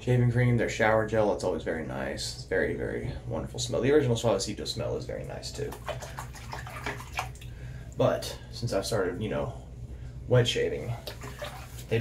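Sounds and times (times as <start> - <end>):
light water splashes: 5.6 - 8.0, 11.0 - 12.0.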